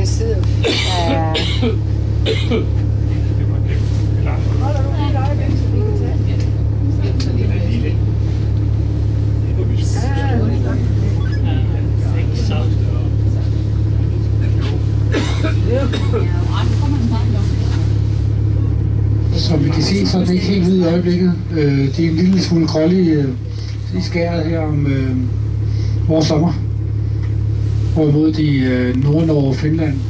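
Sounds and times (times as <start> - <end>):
low drone: 0.0 - 30.0
indistinct voices talking: 9.3 - 25.2.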